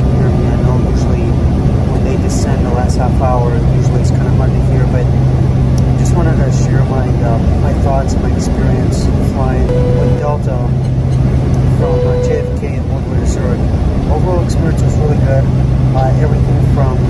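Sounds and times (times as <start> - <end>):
constant low hum: 0.0 - 17.0
jet airliner cabin drone: 0.0 - 17.0.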